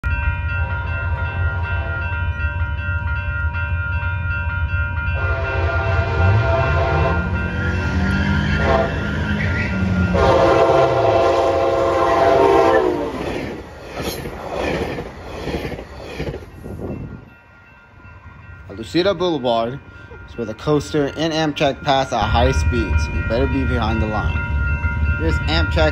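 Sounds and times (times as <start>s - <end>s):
crossing warning bells ringing: 0.0s - 25.9s
train rumble and wheel clatter: 0.0s - 25.9s
train horn blasts: 5.2s - 13.2s.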